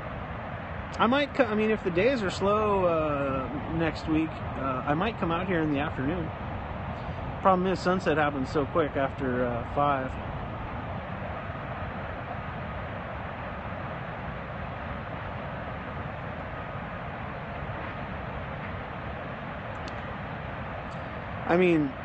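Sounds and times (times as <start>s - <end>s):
water roaring down spillway: 0.0s - 22.0s.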